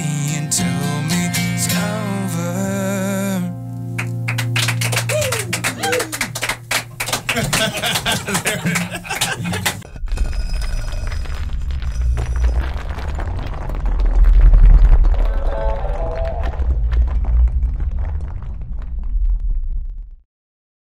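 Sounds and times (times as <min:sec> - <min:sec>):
short laugh: 0:07.3 - 0:09.8
deep booming bass rumble: 0:09.8 - 0:20.2.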